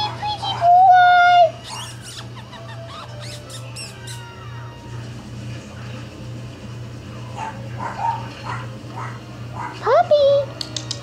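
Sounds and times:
steady low hum: 0.0 - 11.0
puppy whimpering: 1.6 - 4.6.

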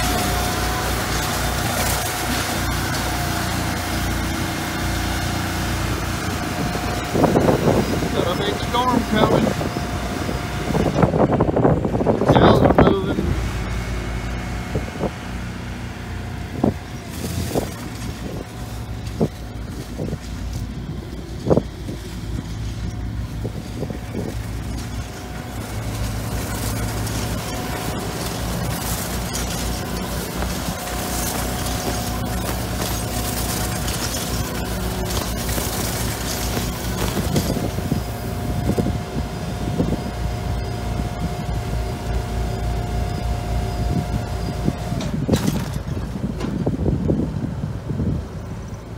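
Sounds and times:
steady high whine: 0.0 - 45.3
engines running: 0.0 - 48.9.

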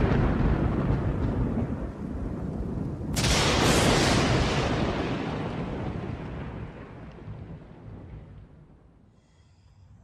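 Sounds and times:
thunderclap rumble: 0.0 - 8.9
rain: 0.0 - 9.1.

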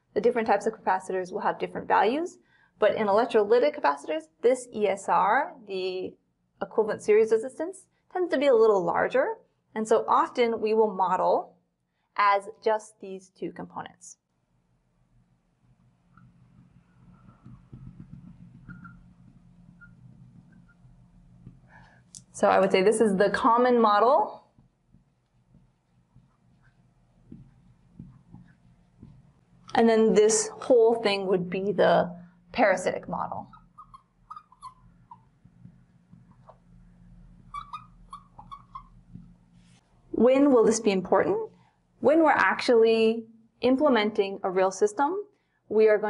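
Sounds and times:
low room hum: 0.0 - 46.0
marker squeaking: 16.1 - 21.6, 33.4 - 36.7, 37.4 - 39.4
marker tapping on glass: 16.2 - 20.7.

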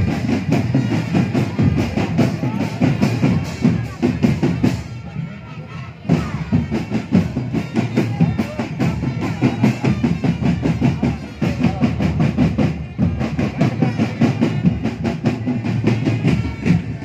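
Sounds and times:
bass drums: 0.0 - 5.0, 6.1 - 17.0
snare drums: 0.0 - 5.3, 6.0 - 17.0.

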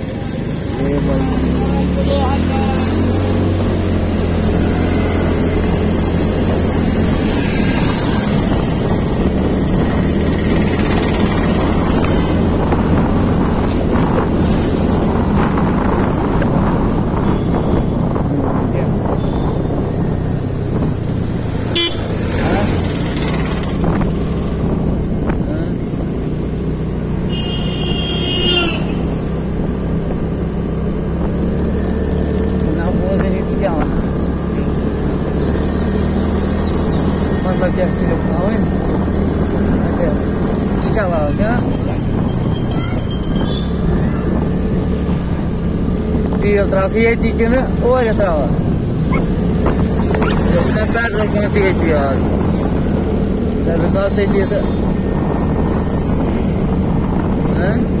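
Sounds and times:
road noise: 0.0 - 58.0
scooter engine running: 20.5 - 24.4
warbling vehicle horn: 21.7 - 22.2, 27.3 - 29.2.

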